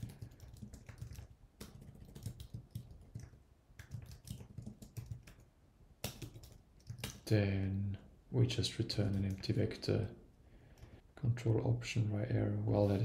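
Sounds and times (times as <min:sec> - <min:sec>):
typing on computer keyboard: 0:00.0 - 0:07.3.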